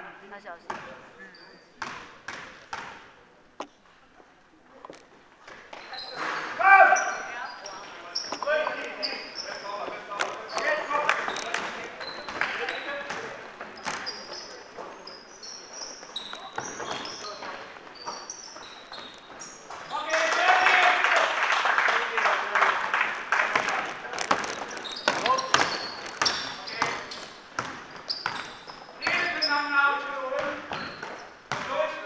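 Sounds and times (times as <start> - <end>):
sneakers squeaking on court floor: 0.6 - 3.8, 4.9 - 20.1, 23.1 - 32.0
basketball bouncing: 0.7 - 1.0, 1.8 - 3.0, 11.5 - 14.2, 23.5 - 29.4, 30.4 - 31.8.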